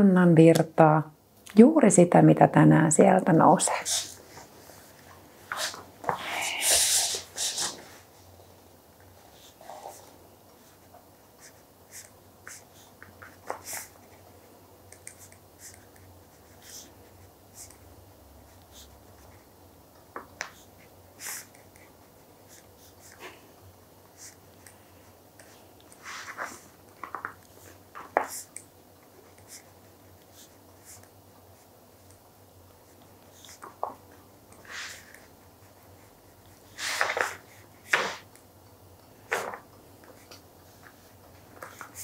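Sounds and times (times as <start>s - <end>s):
pens scratching on paper: 25.4s - 28.6s, 33.3s - 38.3s.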